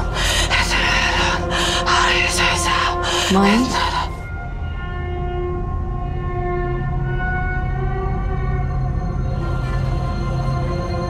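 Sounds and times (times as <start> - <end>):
woman breathing hard: 0.0 - 1.9
dark horror score drone: 0.0 - 11.0.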